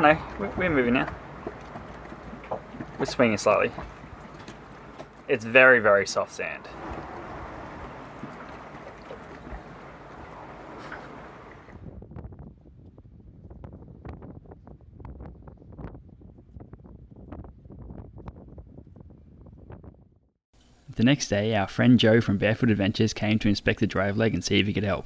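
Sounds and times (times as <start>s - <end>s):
wind buffeting microphone: 6.6s - 20.3s.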